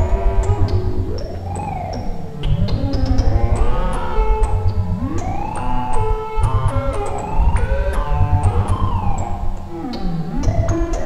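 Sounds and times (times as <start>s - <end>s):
sharp electronic ticks: 0.0s - 11.0s
siren-like synthesizer glides: 0.0s - 11.0s.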